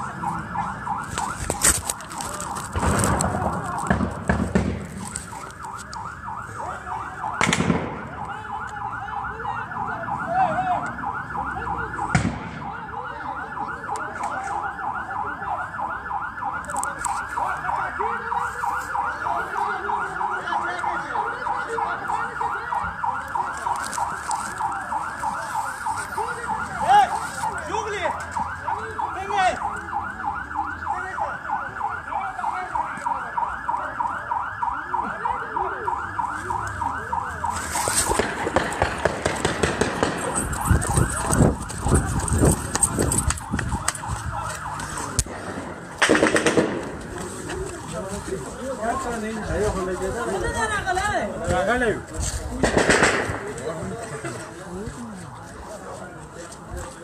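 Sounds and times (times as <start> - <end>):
electronic siren yelping: 0.0 - 4.3, 4.9 - 48.1.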